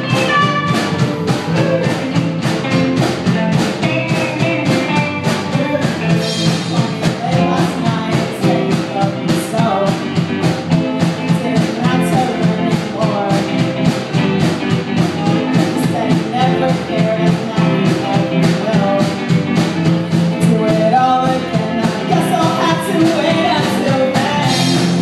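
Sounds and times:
live ska-punk band playing: 0.0s - 25.0s
steady drum beat: 0.0s - 25.0s.

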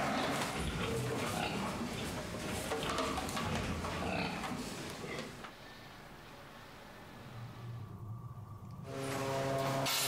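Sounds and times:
pigs grunting and squealing: 0.0s - 5.4s
barn noise: 0.0s - 8.3s.

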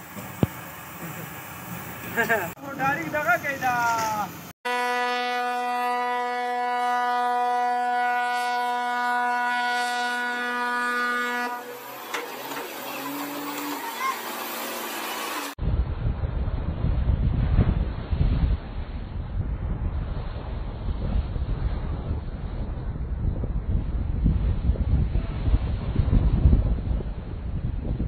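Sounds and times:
ship's horn blast: 4.7s - 14.0s
wind buffeting microphone: 15.6s - 28.0s.

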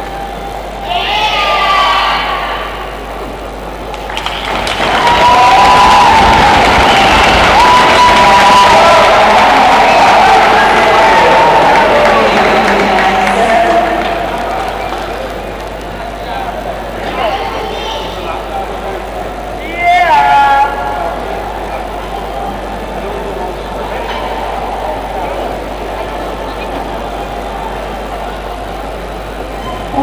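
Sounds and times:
crowd murmur of voices: 0.0s - 30.0s.

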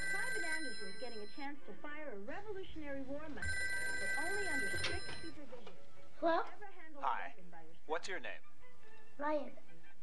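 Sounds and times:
telephone ringing: 0.0s - 1.6s, 3.3s - 5.5s.

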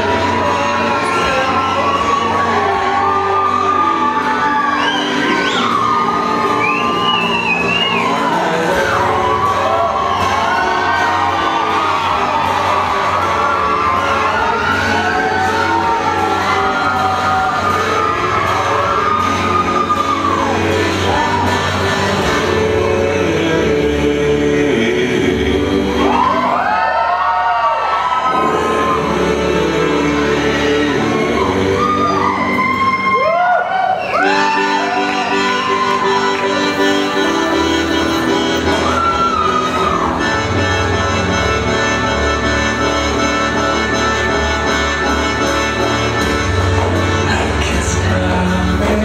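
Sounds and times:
audience whooping and cheering: 0.0s - 23.2s, 26.0s - 49.0s
loud music: 0.0s - 49.0s.

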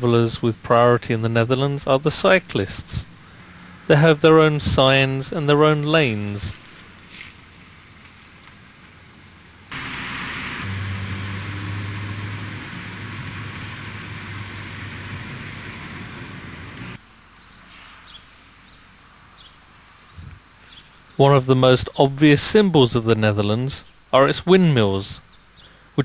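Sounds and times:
road and wind noise: 0.0s - 26.0s
car engine hum: 2.5s - 17.1s.

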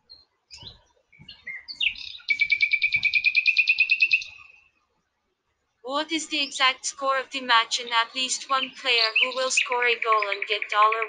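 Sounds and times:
bird singing: 0.0s - 4.6s, 7.6s - 11.0s.

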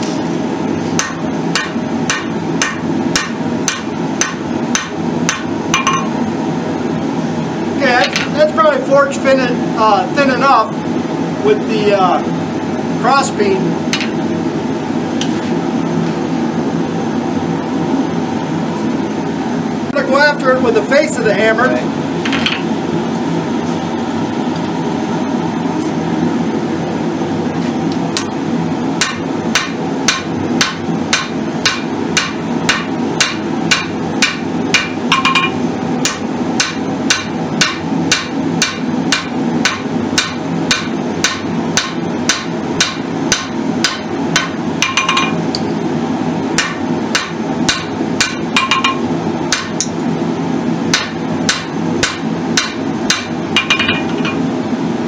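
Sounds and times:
steady low hum: 0.0s - 55.0s
hammer striking metal on anvil: 1.0s - 6.2s, 13.9s - 14.2s, 29.0s - 45.4s, 46.6s - 49.9s, 50.9s - 54.4s.

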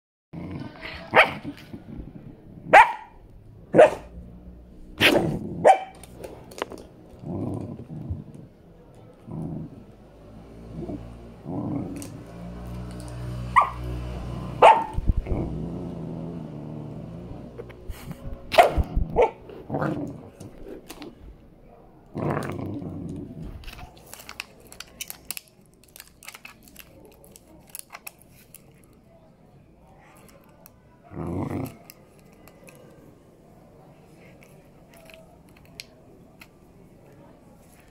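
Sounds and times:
puppy growling: 0.4s - 2.8s, 4.9s - 6.1s, 6.7s - 21.2s, 22.1s - 23.8s, 31.0s - 32.1s
puppy barking: 1.1s - 1.4s, 2.7s - 4.2s, 5.0s - 6.0s, 13.5s - 13.9s, 14.6s - 15.0s, 18.5s - 19.4s.

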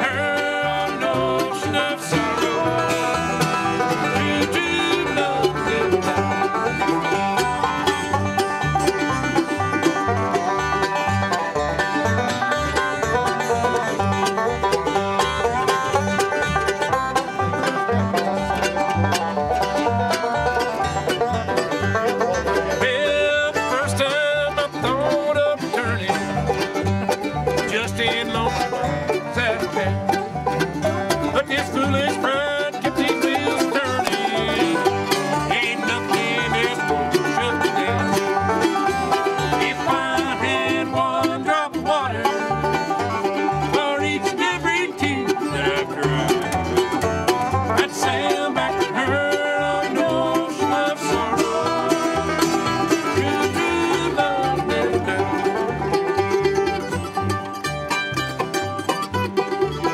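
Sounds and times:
banjo picking rolls: 0.0s - 59.9s
mandolin: 0.0s - 59.9s
strummed acoustic guitars: 0.0s - 59.9s.

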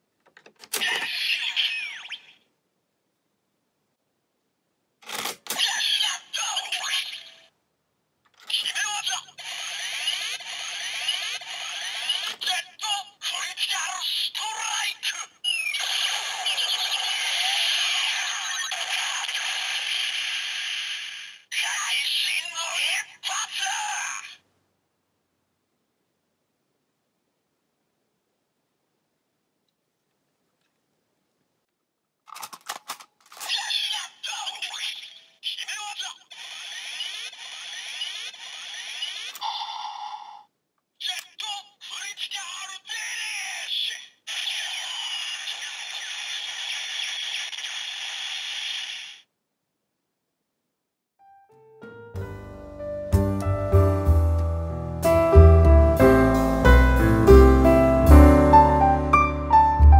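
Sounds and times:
synthesized voice call: 5.6s - 7.5s, 8.5s - 19.6s, 21.5s - 24.4s
game-style music: 51.5s - 59.9s.

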